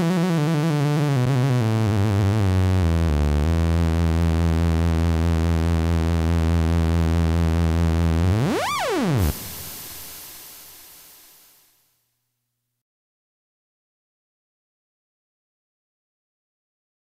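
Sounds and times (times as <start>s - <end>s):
synth-funk music: 0.0s - 10.0s
synthesizer pitch sweep: 6.8s - 11.6s.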